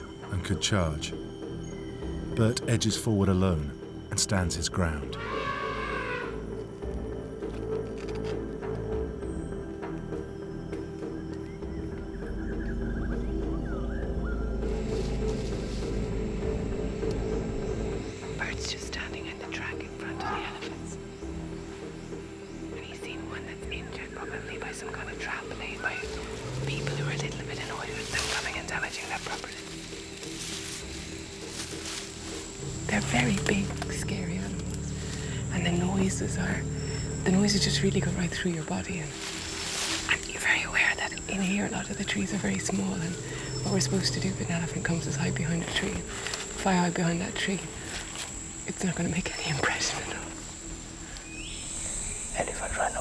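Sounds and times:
low drone of tense music: 0:00.0 - 0:53.0
elephant trumpeting: 0:05.2 - 0:06.5
elephant calling: 0:05.2 - 0:06.6, 0:32.4 - 0:40.0, 0:41.8 - 0:46.4
woman speaking: 0:32.8 - 0:34.6, 0:35.5 - 0:39.2.

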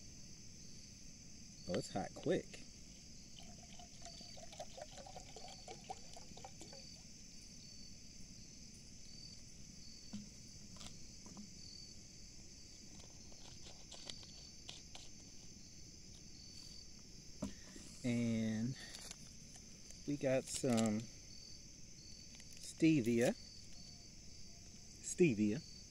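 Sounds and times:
insects chirping: 0:00.0 - 0:25.9
water pouring into a cup: 0:03.2 - 0:07.1.

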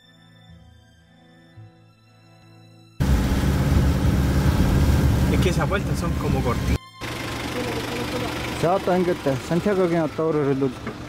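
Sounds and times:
vehicle engine and road noise: 0:03.0 - 0:11.0.

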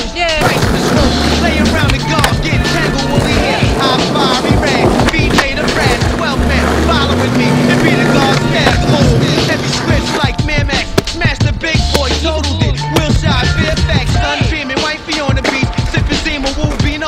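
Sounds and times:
skateboard wheels rolling on stone: 0:00.0 - 0:17.0
music with deep sliding bass: 0:00.3 - 0:14.7
skateboard clacks: 0:00.3 - 0:17.0.

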